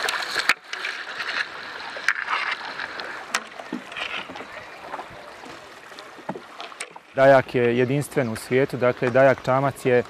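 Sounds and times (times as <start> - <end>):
water washing against boat hull: 0.0 - 10.0.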